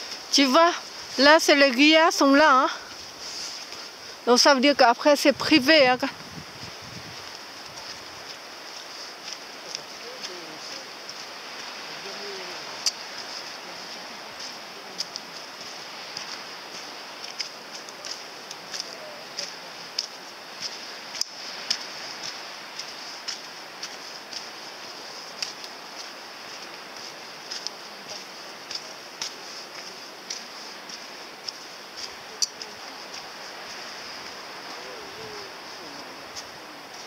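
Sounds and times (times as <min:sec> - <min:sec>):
footsteps crunching on dirt path: 0:00.0 - 0:37.0
outdoor hiss: 0:00.0 - 0:37.0.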